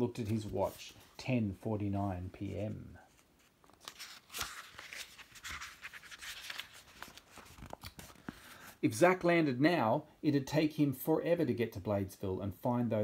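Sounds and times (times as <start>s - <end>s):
book pages rustling: 0.1s - 1.1s, 2.4s - 8.8s.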